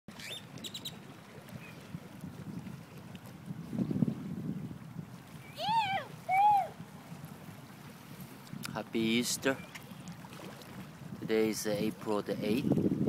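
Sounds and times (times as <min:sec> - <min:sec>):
wind buffeting microphone: 0:00.2 - 0:13.0.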